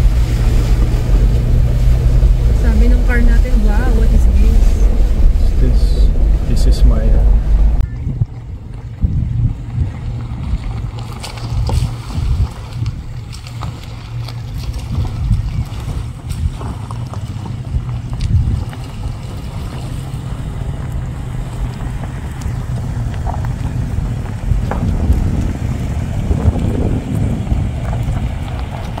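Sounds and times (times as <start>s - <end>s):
low engine rumble: 0.0s - 29.0s
wind buffeting microphone: 0.0s - 29.0s
stones clicking under tyres: 8.7s - 29.0s.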